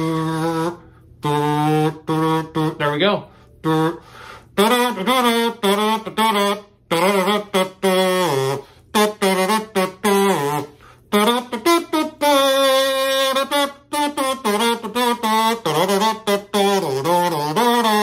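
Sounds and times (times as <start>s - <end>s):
comb kazoo buzzing: 0.0s - 18.0s.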